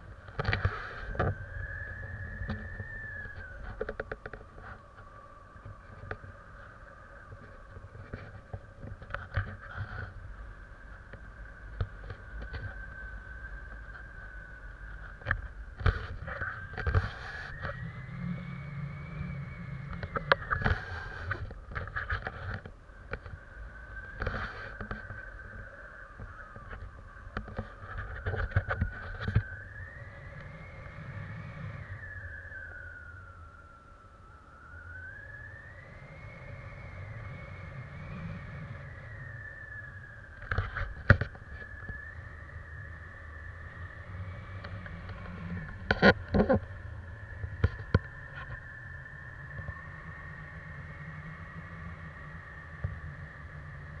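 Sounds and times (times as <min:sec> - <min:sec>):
wind buffeting microphone: 0:00.0 - 0:54.0
thin whistling tone: 0:00.4 - 0:07.2, 0:09.6 - 0:22.5, 0:23.3 - 0:54.0.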